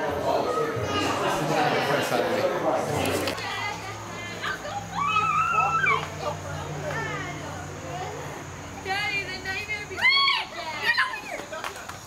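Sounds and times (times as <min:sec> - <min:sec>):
children playing and calling out: 0:00.4 - 0:01.8, 0:03.4 - 0:11.4
child's high-pitched squeal: 0:04.9 - 0:06.0, 0:10.0 - 0:11.2.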